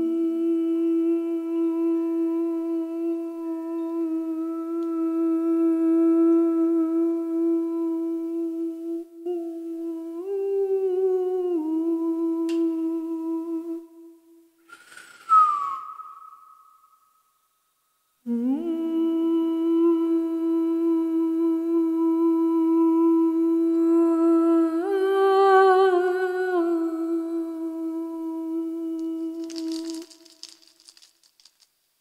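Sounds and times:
woman humming: 0.0 - 14.2, 18.2 - 30.6
dry rattle shakes: 14.7 - 16.3, 29.2 - 32.0.

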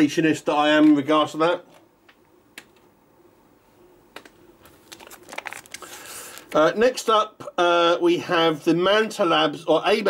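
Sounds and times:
plastic rustling: 4.2 - 6.7.

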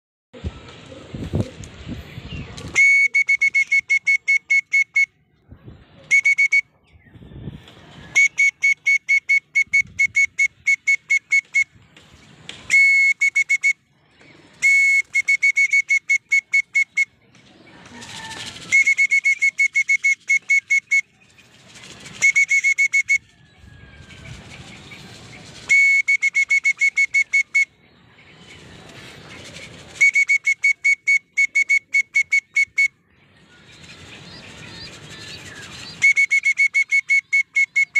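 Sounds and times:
whistle trills: 2.7 - 5.2, 6.1 - 6.7, 8.1 - 11.7, 12.7 - 13.8, 14.6 - 17.2, 18.0 - 21.1, 22.0 - 23.8, 25.5 - 27.8, 29.9 - 33.0, 35.4 - 37.9.

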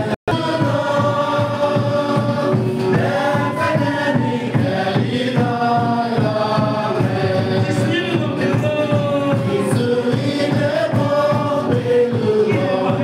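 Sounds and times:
acoustic guitar: 0.0 - 13.0
congregation singing gospel song: 0.0 - 13.0
drum beat: 0.0 - 13.0
man singing through microphone: 0.0 - 13.0.

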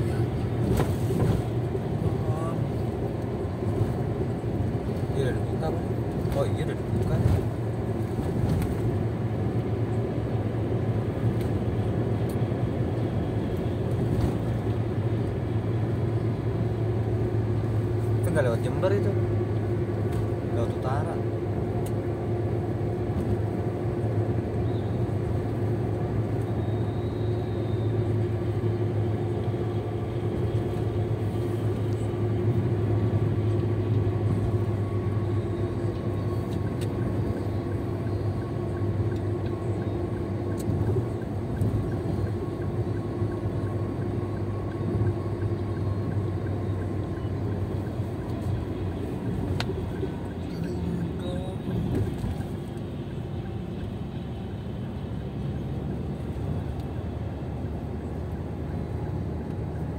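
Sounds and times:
engine and tyre drone: 0.0 - 59.9.

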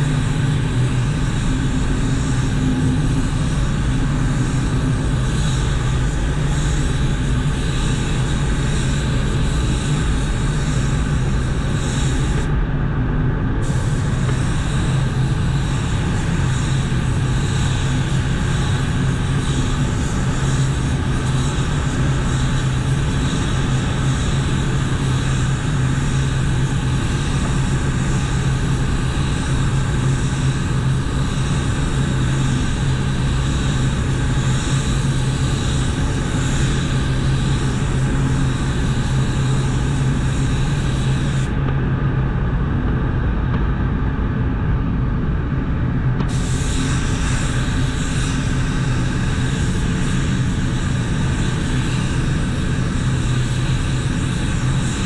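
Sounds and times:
spray gun hissing: 0.0 - 12.5, 13.6 - 41.6, 46.2 - 55.0
low hum of booth air: 0.0 - 55.0.

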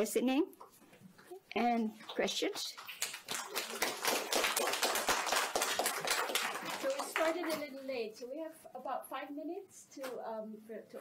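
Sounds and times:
audience applause: 3.0 - 7.5.

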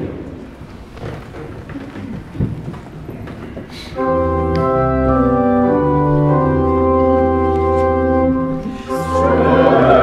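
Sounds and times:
congregation shifting in pews: 0.0 - 10.0.

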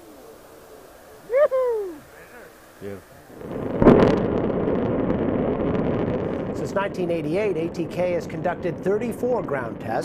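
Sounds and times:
rocket motor roaring: 3.3 - 10.0.

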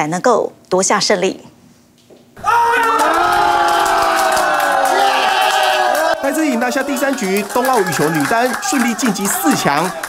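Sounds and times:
group of people cheering: 2.4 - 10.0.

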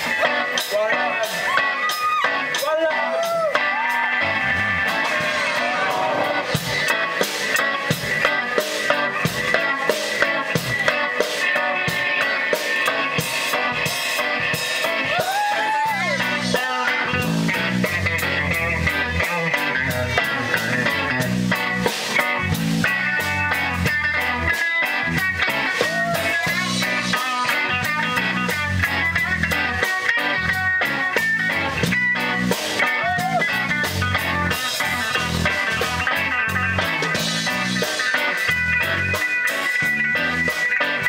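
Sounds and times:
electric bass: 0.0 - 41.0
electric guitar bends and slides: 0.0 - 41.0
rock band jamming: 0.0 - 41.0.

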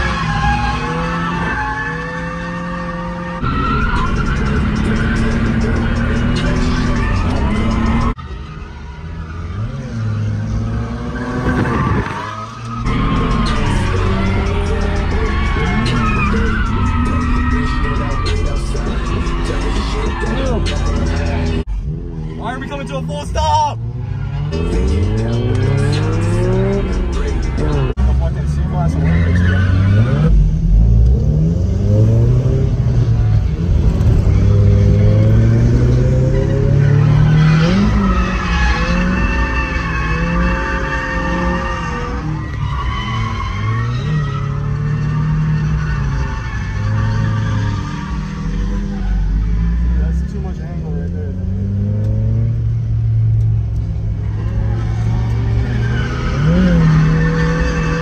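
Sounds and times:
tyres squealing: 0.0 - 21.6, 36.1 - 50.8, 54.1 - 58.0
car engine revving: 0.0 - 58.0.

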